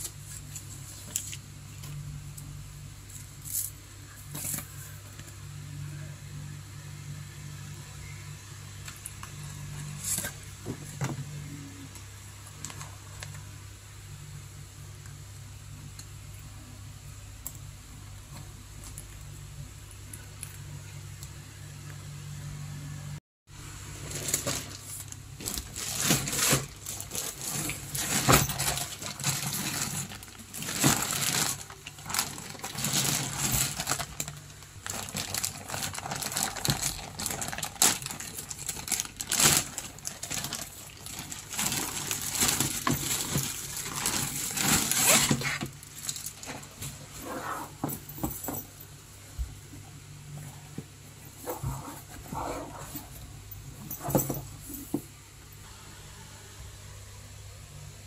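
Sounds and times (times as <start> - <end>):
plastic bag crinkling: 24.0 - 46.9.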